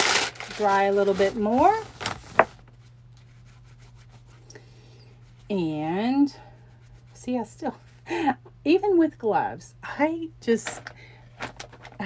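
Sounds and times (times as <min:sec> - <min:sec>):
paper towel rubbing on paper: 0:00.5 - 0:04.5, 0:05.1 - 0:07.9
hands rubbing together: 0:03.2 - 0:04.5.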